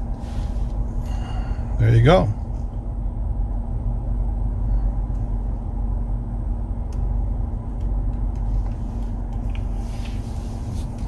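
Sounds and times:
car cabin low rumble: 0.0s - 11.0s
faint steady hum: 0.0s - 11.0s.

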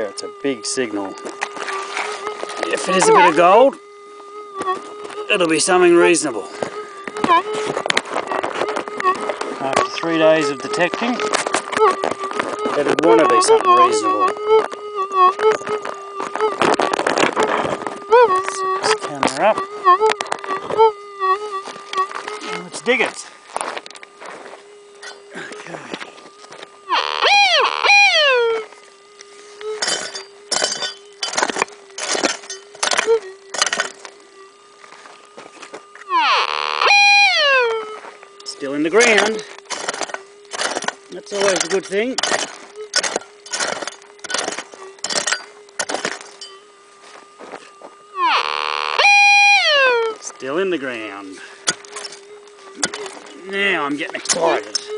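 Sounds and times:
metal detector signal response: 2.2s - 3.8s, 7.2s - 22.9s, 26.9s - 28.8s, 36.0s - 46.6s, 48.2s - 51.0s
metal detector threshold tone: 2.6s - 3.7s, 9.6s - 12.0s, 12.7s - 14.4s, 26.9s - 28.6s, 36.1s - 45.4s, 48.2s - 52.2s
pick striking stony ground: 39.6s - 46.5s.

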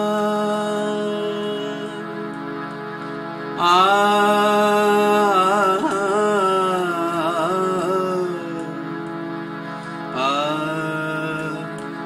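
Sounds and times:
harmonium: 0.0s - 12.0s
classical singing: 3.6s - 8.9s, 10.1s - 12.0s.

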